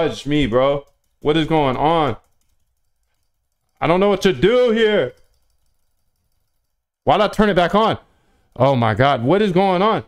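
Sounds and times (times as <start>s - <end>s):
man speaking: 0.0s - 2.2s, 3.8s - 5.2s, 7.0s - 10.0s.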